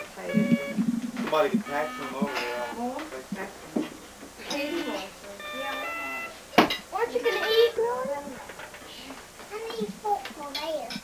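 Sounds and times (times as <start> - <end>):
electronic toy beeps: 0.0 - 2.4, 5.4 - 6.4.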